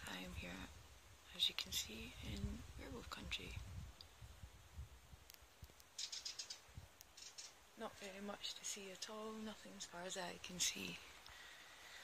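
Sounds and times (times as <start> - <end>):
faint bird chirps: 5.9 - 7.7.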